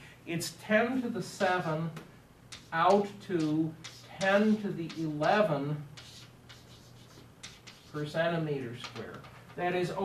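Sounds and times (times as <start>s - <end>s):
chalk scratching on blackboard: 2.5s - 8.2s.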